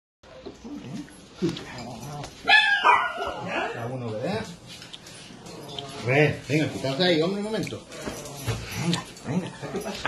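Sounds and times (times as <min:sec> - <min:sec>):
dogs whining and grumbling: 0:00.3 - 0:03.9, 0:07.8 - 0:10.0.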